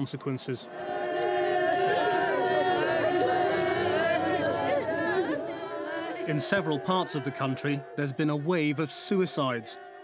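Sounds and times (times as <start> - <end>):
women's voices wailing in mourning: 0.7 - 10.0.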